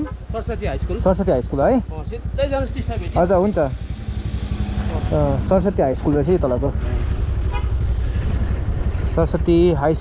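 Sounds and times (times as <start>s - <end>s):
motorbike engine rumble: 0.0s - 10.0s.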